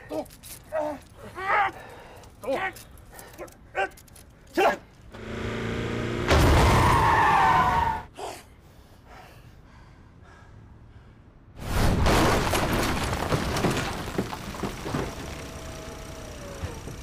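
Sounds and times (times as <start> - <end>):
car engine revving: 5.2 - 7.7
vehicle crash: 6.1 - 8.1, 11.6 - 17.0
tyre screech: 6.6 - 8.1.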